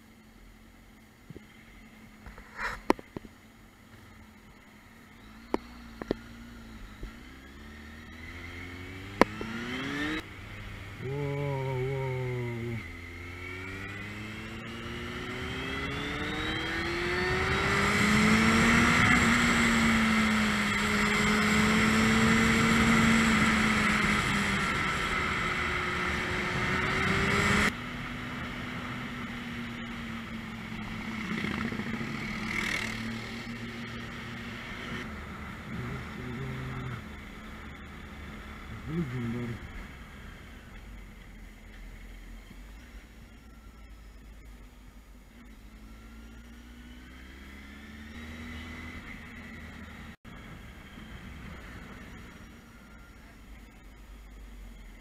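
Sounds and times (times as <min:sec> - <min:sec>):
motorcycle engine accelerating: 0:03.9 - 0:53.8.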